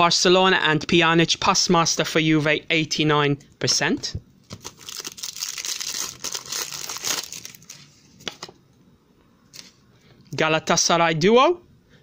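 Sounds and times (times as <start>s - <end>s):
foil wrapper tearing and crinkling: 4.5s - 7.8s.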